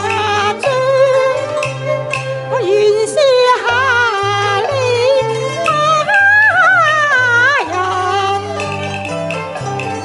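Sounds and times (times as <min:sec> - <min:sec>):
opera singing with gliding melody: 0:00.0 - 0:08.9.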